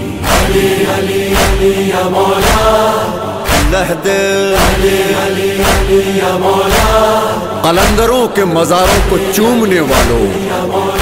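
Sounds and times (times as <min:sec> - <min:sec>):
chanted vocal note: 0:00.0 - 0:11.0
heavy percussive hits: 0:00.0 - 0:11.0
steady drone: 0:00.0 - 0:11.0.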